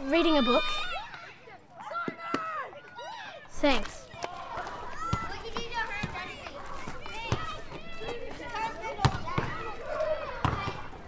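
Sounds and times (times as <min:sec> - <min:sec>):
children calling out: 0:00.0 - 0:11.0.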